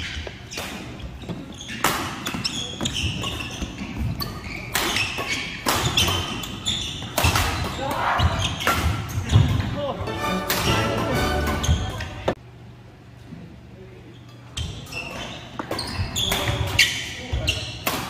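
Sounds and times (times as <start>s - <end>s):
rackets striking shuttlecock: 4.7s - 7.7s, 10.4s - 12.1s
players' voices: 7.4s - 12.4s.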